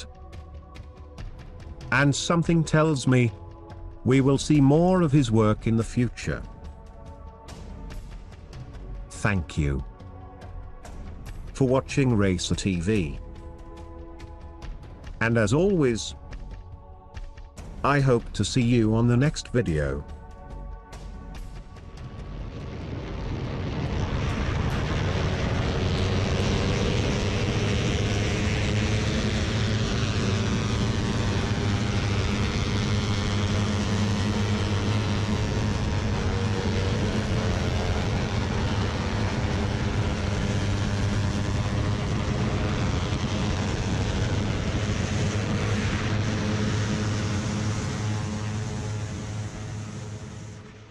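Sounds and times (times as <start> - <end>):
motorcycle engines at high revs: 24.7 - 50.9.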